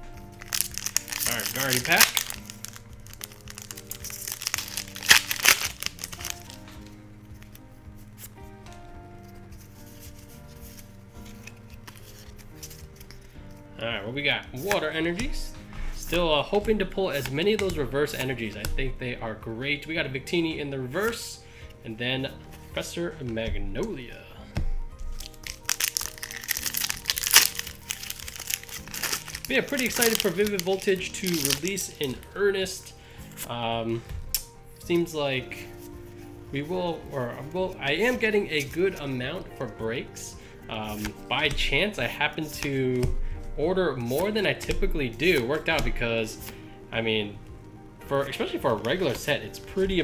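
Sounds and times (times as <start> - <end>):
soft background music: 0.0 - 50.0
foil wrapper crinkling and tearing: 0.2 - 7.6, 9.6 - 13.3, 25.0 - 33.5.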